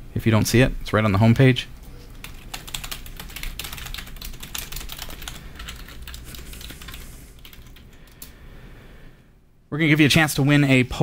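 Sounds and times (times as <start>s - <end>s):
typing on computer keyboard: 2.2s - 8.3s.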